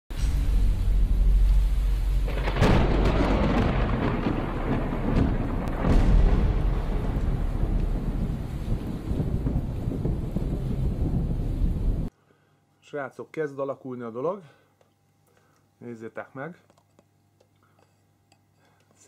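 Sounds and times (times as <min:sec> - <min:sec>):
sharp booming hits: 0:00.1 - 0:12.1
deep continuous rumble: 0:00.2 - 0:12.1.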